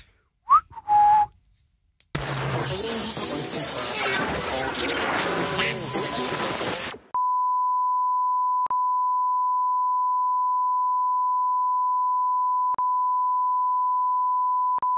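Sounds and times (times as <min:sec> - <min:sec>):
loud hiss-like noise: 0:02.2 - 0:07.0.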